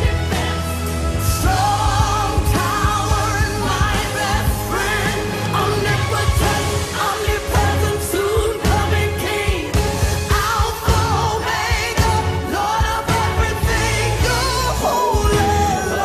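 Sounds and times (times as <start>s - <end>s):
worship song with vocals and band: 0.0s - 16.0s.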